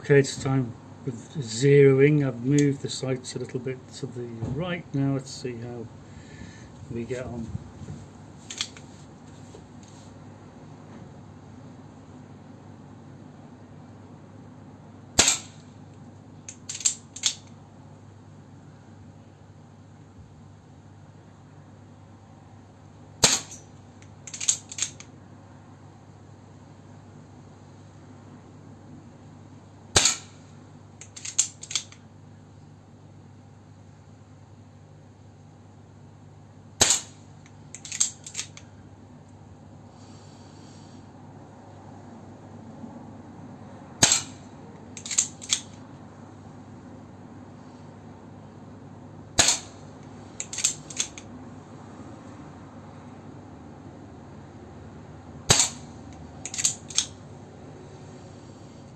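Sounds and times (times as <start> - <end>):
mechanical clicks of gun action: 8.5 - 8.8, 15.2 - 15.6, 16.5 - 17.5, 23.2 - 25.1, 31.0 - 32.0, 36.8 - 38.6, 44.0 - 44.4, 45.0 - 45.8, 49.4 - 49.8, 50.4 - 51.3, 55.5 - 57.2
air pistol shots: 15.2 - 15.7, 23.2 - 23.6, 29.9 - 30.4, 36.8 - 37.2, 44.0 - 45.7, 49.4 - 49.8, 55.5 - 55.9, 56.5 - 57.1.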